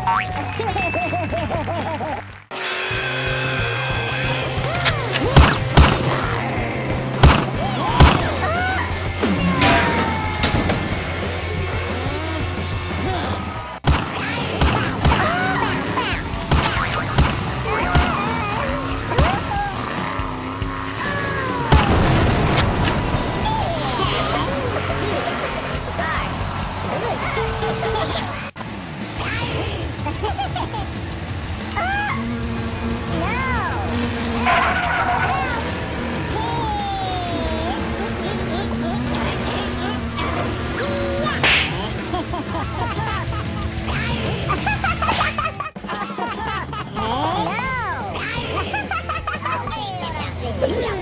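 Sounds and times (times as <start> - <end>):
truck engine running: 0.1 - 45.1
whip-like swish: 41.4 - 41.8.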